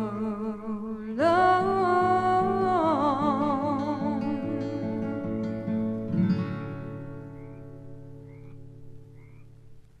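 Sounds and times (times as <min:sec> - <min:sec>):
acoustic guitar chord ringing: 0:00.0 - 0:09.8.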